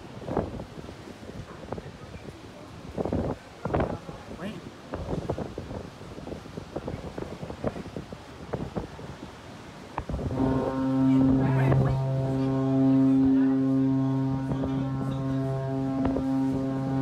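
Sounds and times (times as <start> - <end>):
ship's horn deep blast: 0.1 - 17.0.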